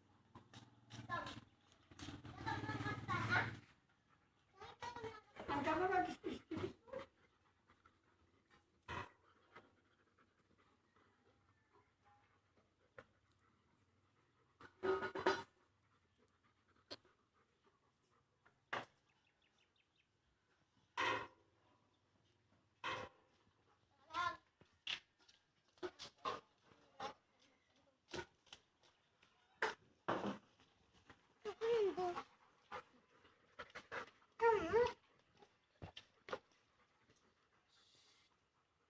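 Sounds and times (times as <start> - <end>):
faint dog sound: 0.0 - 38.9.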